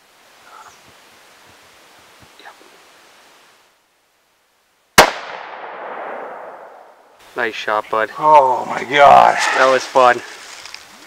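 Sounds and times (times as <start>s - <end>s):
rifle shot with echo: 5.0s - 7.0s.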